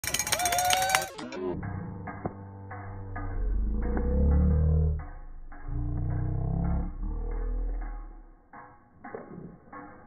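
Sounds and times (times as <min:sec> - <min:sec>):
steady low hum: 0:01.6 - 0:08.8.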